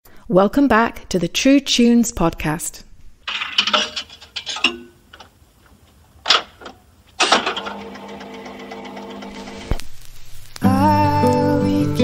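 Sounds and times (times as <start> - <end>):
jukebox mechanical hum: 3.2 - 10.1.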